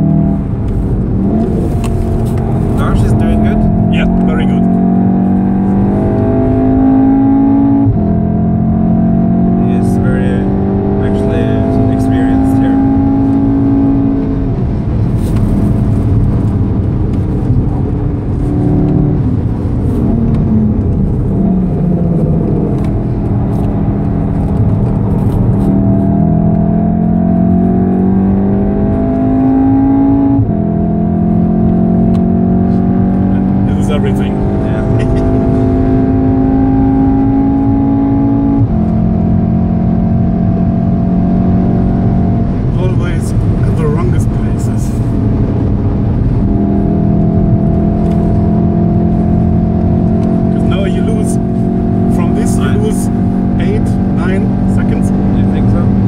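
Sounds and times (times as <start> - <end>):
car engine at full throttle: 0.0 - 56.0
tyre and road noise: 0.0 - 56.0.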